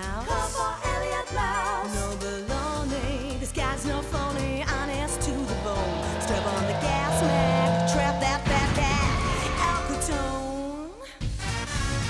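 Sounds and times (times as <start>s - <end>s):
theme music: 3.7s - 10.5s
cartoon engine revving: 4.2s - 10.4s.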